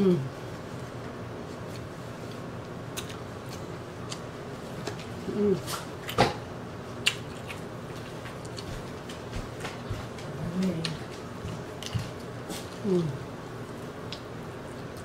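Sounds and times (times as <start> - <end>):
hummed mm: 0.0 - 0.4, 5.2 - 5.9, 12.5 - 13.5
air conditioner hum: 0.0 - 15.0
chewing crispy food: 0.7 - 15.0.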